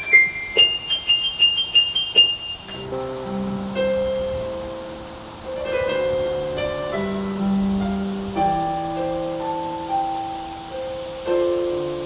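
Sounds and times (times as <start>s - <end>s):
electronic keyboard piano notes: 0.0s - 12.0s.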